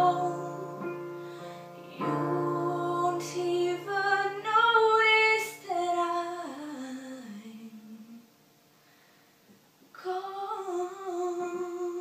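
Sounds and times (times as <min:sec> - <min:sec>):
woman singing a slow ballad: 0:00.0 - 0:08.3, 0:09.9 - 0:12.0.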